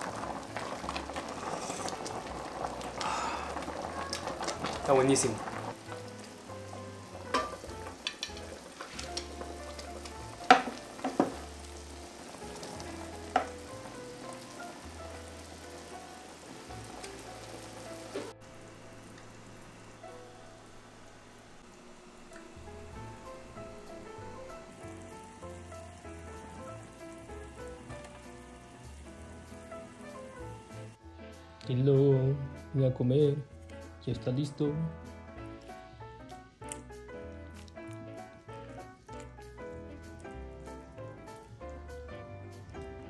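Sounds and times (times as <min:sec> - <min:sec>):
stew simmering: 0:00.0 - 0:31.0, 0:35.4 - 0:43.0.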